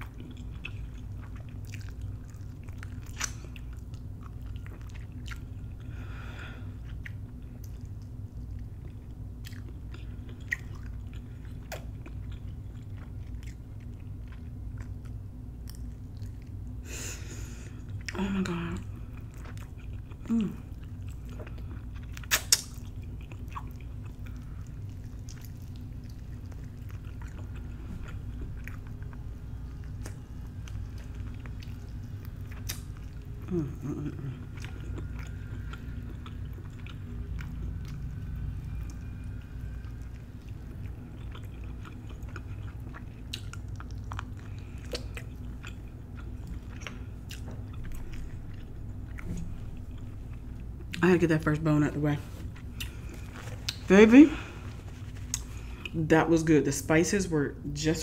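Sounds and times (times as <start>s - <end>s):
person chewing meat off bone: 0.0s - 18.2s, 19.0s - 51.0s, 52.5s - 56.0s
sharp bone snaps: 22.2s - 22.8s
wet mouth clicks: 22.2s - 22.8s.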